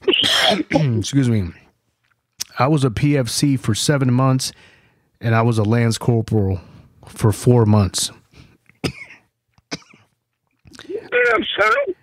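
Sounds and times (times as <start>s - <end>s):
person speaking: 0.0s - 1.7s
man coughing: 0.1s - 1.1s, 8.8s - 10.1s.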